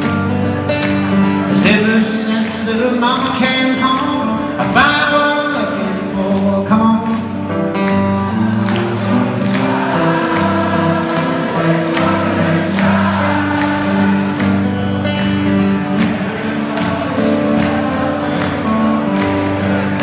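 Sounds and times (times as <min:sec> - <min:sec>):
strummed acoustic guitar: 0:00.0 - 0:20.0
person singing: 0:01.5 - 0:07.4.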